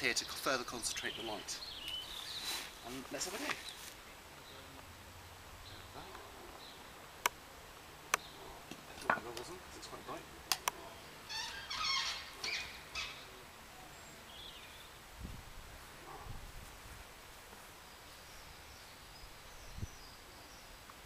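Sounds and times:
short bird calls: 10.9 - 14.6.

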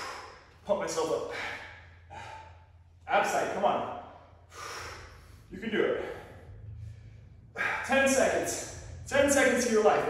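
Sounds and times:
steady low hum: 0.0 - 10.0
man exhaling hard: 4.5 - 6.7.

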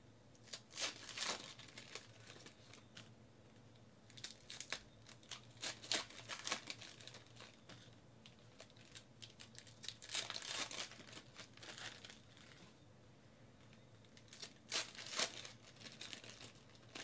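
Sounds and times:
plastic wrapper crinkling and tearing: 0.4 - 3.1, 4.1 - 12.6, 14.0 - 17.0.

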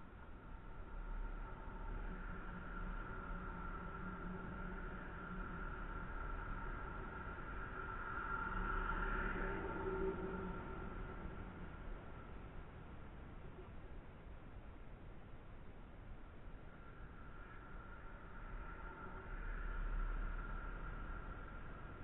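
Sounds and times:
faint motor drone: 0.3 - 12.5.

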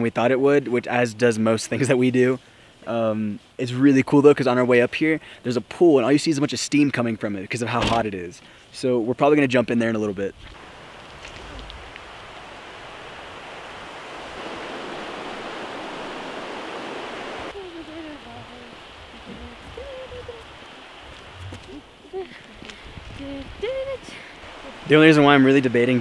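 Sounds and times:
running water rushing: 10.1 - 26.0.

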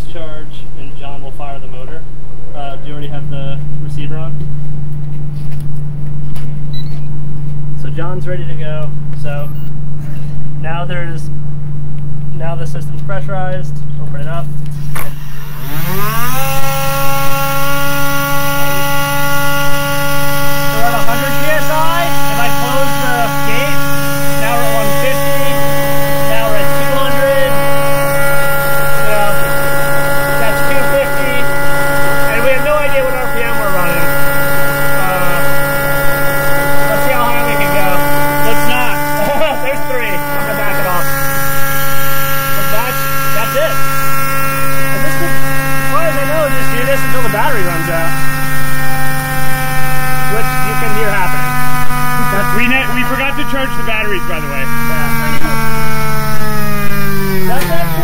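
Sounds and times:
electric motor whining: 14.3 - 58.0.

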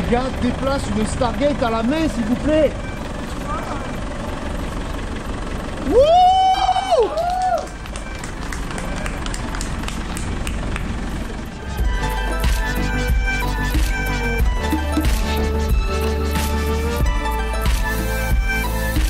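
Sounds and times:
diesel engine running: 0.0 - 19.0
music with heavy bass: 7.8 - 19.0.

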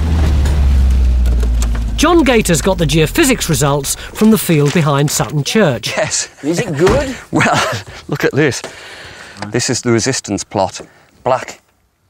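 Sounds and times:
car engine rumbling: 0.0 - 5.7.

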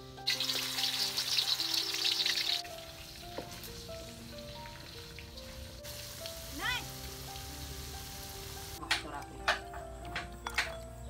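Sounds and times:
meat sizzling in hot oil: 0.0 - 8.9
background music: 0.0 - 11.0.

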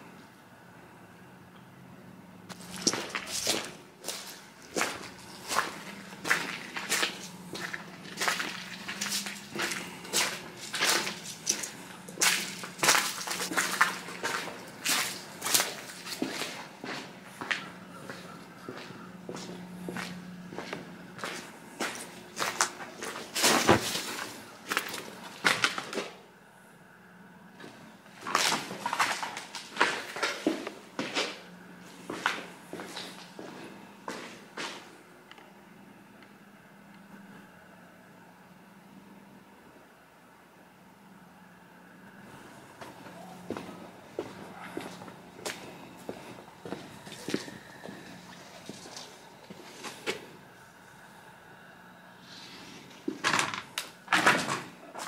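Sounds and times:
faint low hum: 0.0 - 55.0
footsteps on debris: 2.5 - 26.2, 27.6 - 34.9, 42.8 - 50.3.

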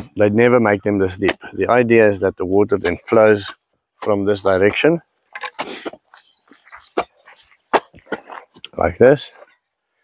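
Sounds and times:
digging tool striking soil: 2.8 - 6.0.

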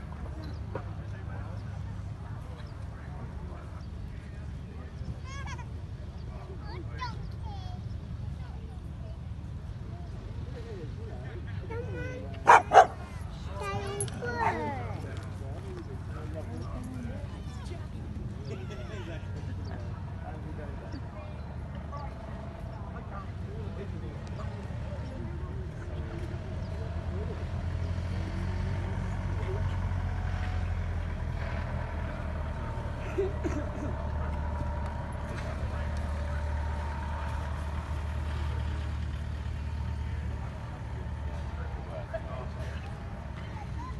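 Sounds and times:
background chatter: 0.0 - 43.9
faint voices: 0.0 - 43.9
dog barking: 12.4 - 13.0.

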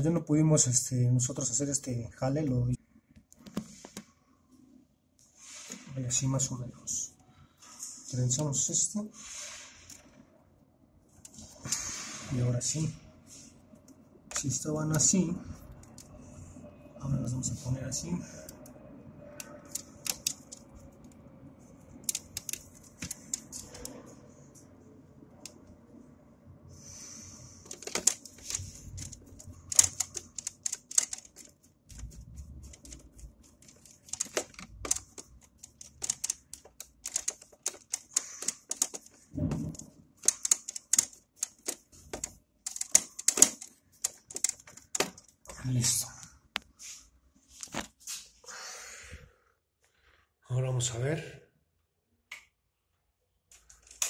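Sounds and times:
screwdriver clicks on terminals: 22.0 - 23.9, 27.7 - 45.3.

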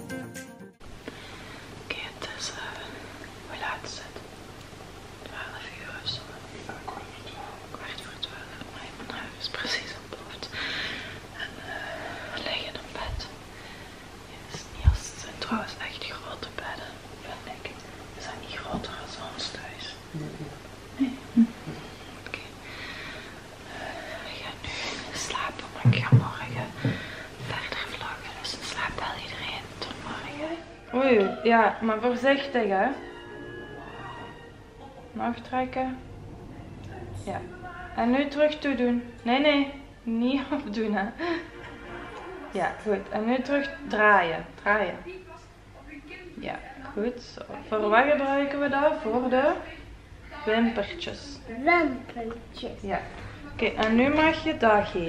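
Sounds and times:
person whispering softly: 5.2 - 10.5, 14.4 - 20.3, 23.8 - 26.7, 27.4 - 30.4.

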